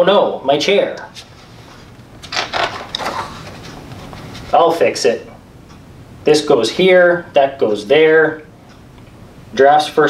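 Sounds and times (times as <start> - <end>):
paper pages rustling: 1.2 - 4.6.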